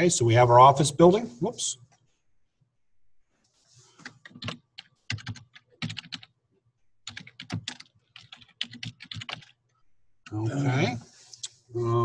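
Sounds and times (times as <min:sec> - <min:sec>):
typing on computer keyboard: 0:04.0 - 0:06.3, 0:07.0 - 0:09.6.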